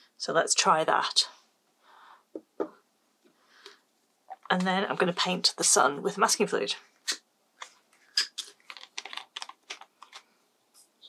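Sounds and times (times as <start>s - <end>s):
plastic screw cap clicking: 8.2s - 10.2s.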